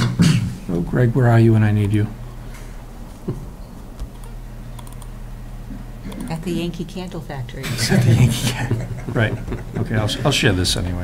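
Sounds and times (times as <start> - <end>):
steady low hum: 0.0 - 11.0
computer keyboard keystrokes: 4.0 - 5.1.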